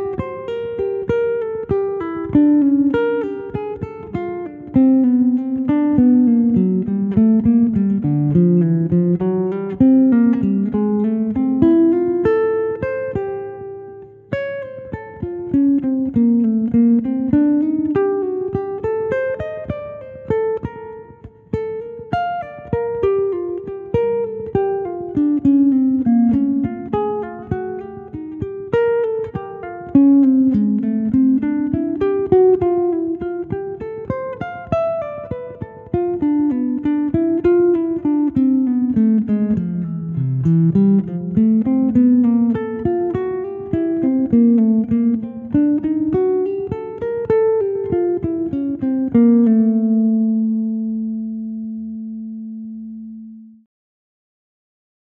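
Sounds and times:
nylon-string guitar jazz improvisation: 0.0s - 53.7s.

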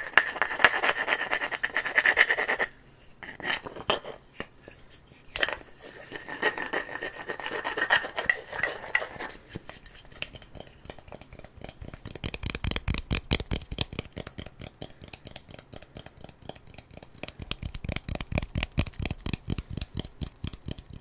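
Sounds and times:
light skin taps and crackles: 8.2s - 21.0s.

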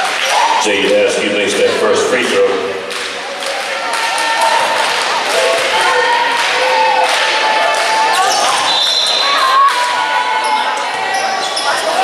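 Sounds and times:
cheerleaders chanting: 3.2s - 12.0s.

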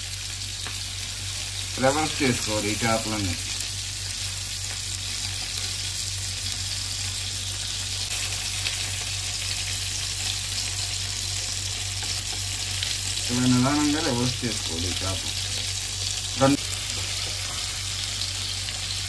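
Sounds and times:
fish sizzling in hot oil: 0.0s - 19.0s.

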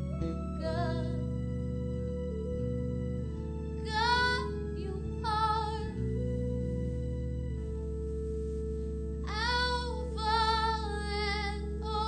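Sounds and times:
woman singing with vibrato: 0.6s - 1.2s, 3.9s - 6.0s, 9.3s - 12.0s.

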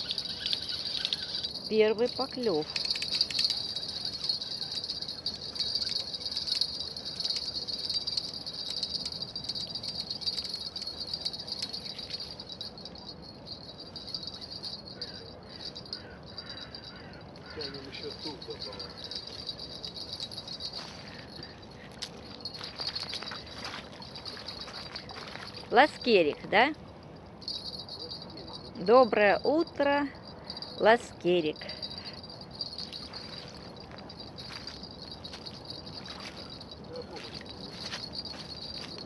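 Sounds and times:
crickets chirping: 0.0s - 39.0s.

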